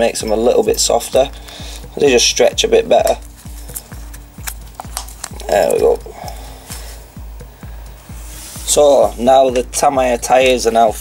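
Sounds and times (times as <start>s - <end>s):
background music with thumping beat: 0.0s - 11.0s
rubber tyre rubbing onto rim: 8.0s - 10.2s.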